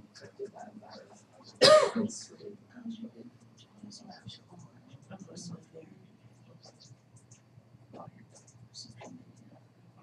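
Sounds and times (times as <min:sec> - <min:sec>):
person sneezing: 0:01.6 - 0:02.0.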